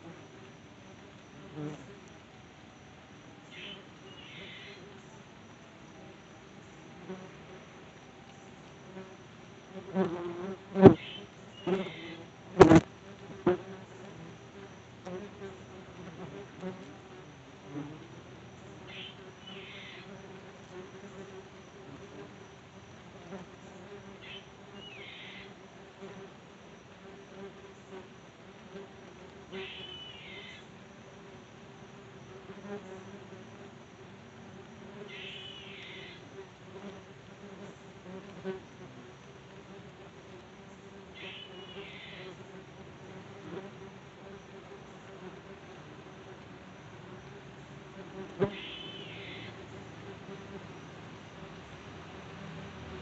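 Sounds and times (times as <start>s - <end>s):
wasps buzzing: 8.7s - 26.3s, 47.0s - 50.8s.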